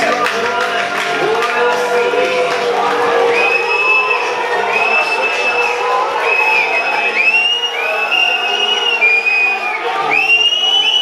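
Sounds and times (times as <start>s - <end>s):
crowd voices: 0.0s - 11.0s
crowd whistling shrilly: 1.3s - 11.0s.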